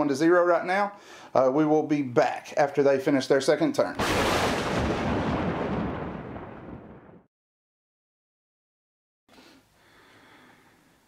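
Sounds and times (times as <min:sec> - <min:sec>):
explosion blast: 0:04.0 - 0:07.3.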